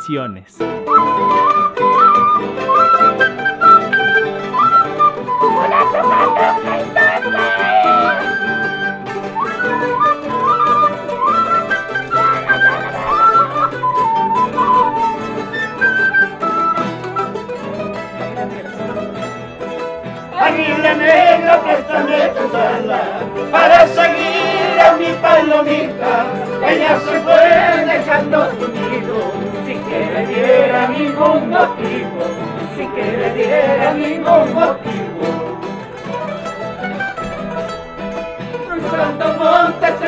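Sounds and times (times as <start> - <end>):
flute melody: 0.0 - 40.0
plucked strings and guitar: 0.0 - 40.0
person singing: 5.4 - 8.5, 20.3 - 35.8, 38.6 - 40.0.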